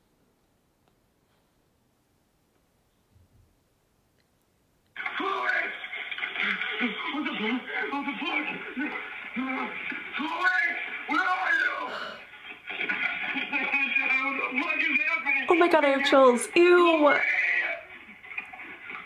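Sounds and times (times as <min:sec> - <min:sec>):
voice over phone speaker: 0:15.3 - 0:17.6.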